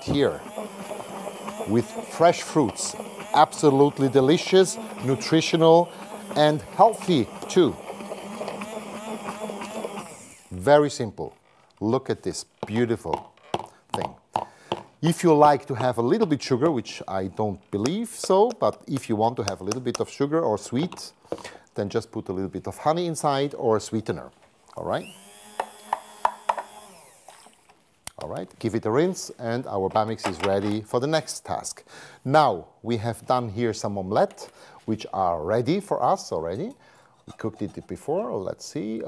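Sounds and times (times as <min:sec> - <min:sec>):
hand blender motor hum: 0:00.0 - 0:11.5, 0:24.8 - 0:27.7.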